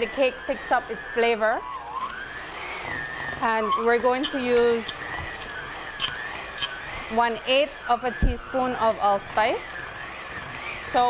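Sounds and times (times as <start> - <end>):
electric mixer motor whine: 0.0 - 11.0.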